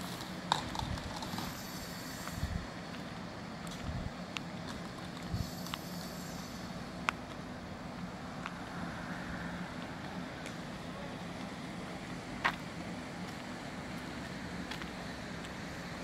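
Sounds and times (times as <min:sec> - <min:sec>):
engine humming: 0:00.0 - 0:16.0
outdoor background noise: 0:00.0 - 0:16.0.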